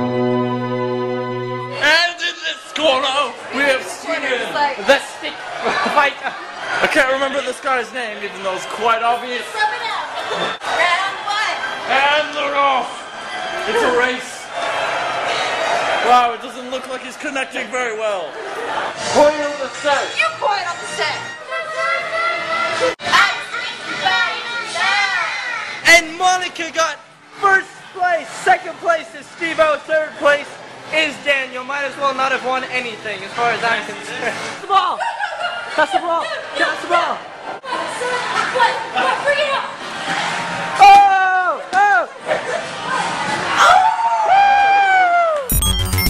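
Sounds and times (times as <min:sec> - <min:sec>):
electronic music with heavy bass: 0:45.5 - 0:46.0.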